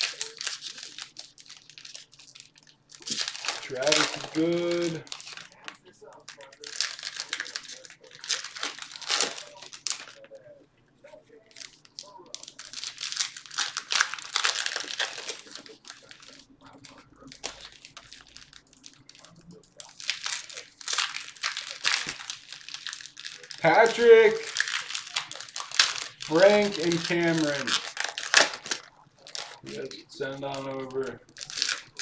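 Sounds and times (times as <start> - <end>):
foil wrappers crinkling and tearing: 0.0 - 32.0.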